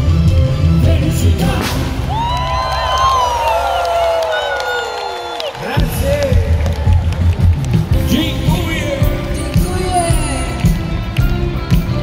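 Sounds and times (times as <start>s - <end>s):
live band and singers: 0.0s - 3.7s, 5.6s - 12.0s
crowd cheering: 1.7s - 12.0s.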